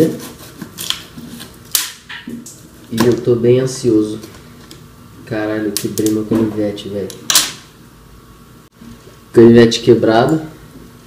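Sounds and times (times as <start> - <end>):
knife scraping packing tape: 0.0 - 2.0.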